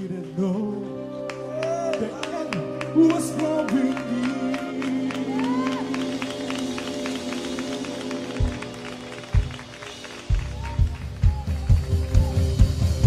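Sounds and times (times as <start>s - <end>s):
held keyboard chords: 0.0s - 13.0s
drum kit driving beat: 5.1s - 13.0s.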